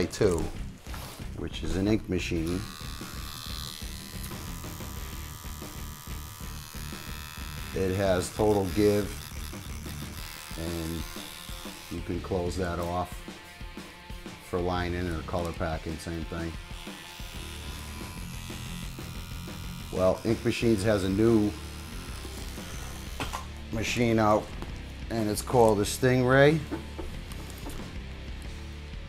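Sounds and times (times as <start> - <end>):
tattoo machine buzzing: 0.0 - 24.2, 26.6 - 28.7.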